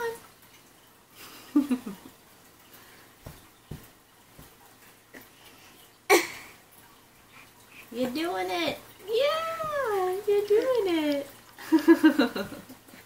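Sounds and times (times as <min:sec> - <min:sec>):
soft thumps: 0:03.2 - 0:04.7
faint taps: 0:03.2 - 0:04.8.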